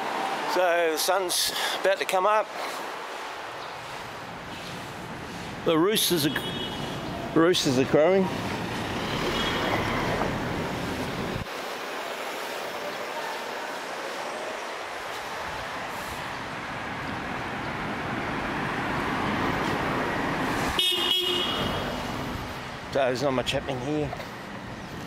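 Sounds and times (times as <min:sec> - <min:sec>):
city street traffic: 0:00.0 - 0:25.0
car horn toot: 0:06.2 - 0:07.0, 0:20.8 - 0:21.9.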